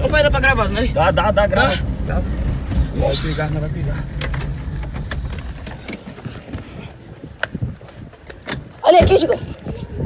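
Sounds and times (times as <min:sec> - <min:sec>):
car engine rumble: 0:00.0 - 0:10.0.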